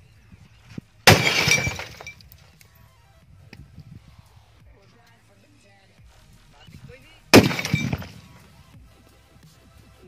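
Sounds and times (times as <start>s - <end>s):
falling debris clinks: 1.1s - 2.4s, 7.4s - 8.3s.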